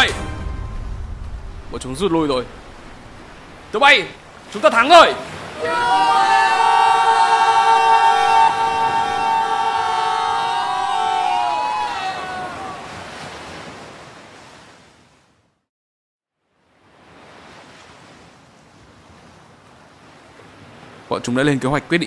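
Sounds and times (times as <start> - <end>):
ocean surf: 0.0 - 15.6, 16.5 - 22.0
men cheering: 4.9 - 13.2.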